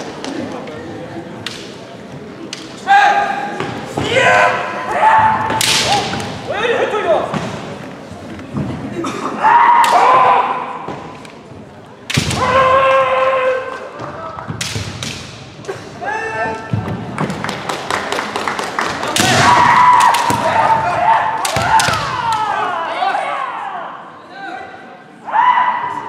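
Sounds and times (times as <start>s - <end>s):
bamboo sword strikes cracking: 5.6s - 6.3s, 12.1s - 12.5s, 14.6s - 15.4s.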